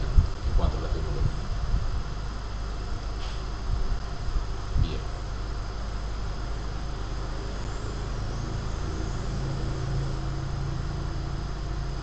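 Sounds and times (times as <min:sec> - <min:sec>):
low background rumble and hum: 0:00.0 - 0:12.0.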